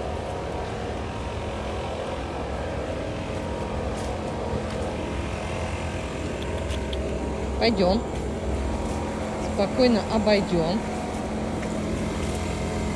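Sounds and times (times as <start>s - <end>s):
distant engine drone: 0.0s - 12.9s.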